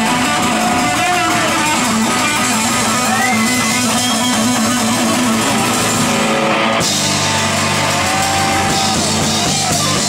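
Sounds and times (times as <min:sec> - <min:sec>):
electric guitar bending notes: 0:00.0 - 0:10.0
live rock band playing: 0:00.0 - 0:10.0.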